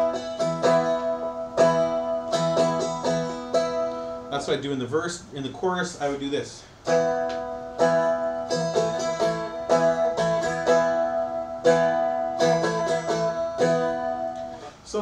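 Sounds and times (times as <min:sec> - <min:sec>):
strummed strings with drone: 0:00.0 - 0:04.7, 0:06.8 - 0:14.7.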